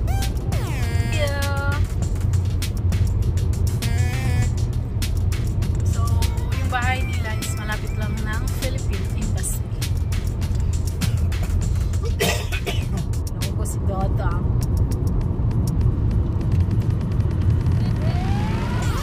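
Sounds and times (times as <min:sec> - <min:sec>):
low rumble: 0:00.0 - 0:12.3, 0:12.9 - 0:19.0.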